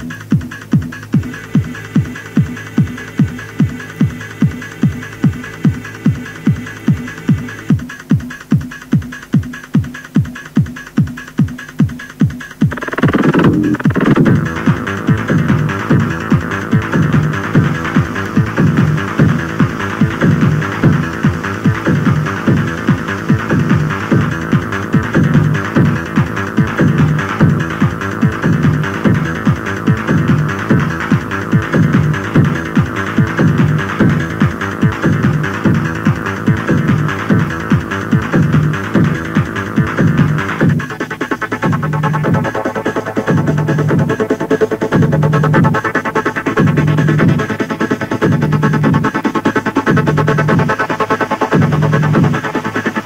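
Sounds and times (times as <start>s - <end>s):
electronic dance music: 0.0s - 53.0s
pounding kick drum beat: 0.0s - 53.0s.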